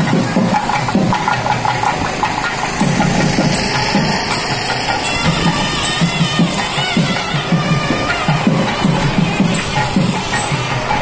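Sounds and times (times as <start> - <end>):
drums beating: 0.0 - 11.0
engine running: 0.0 - 11.0.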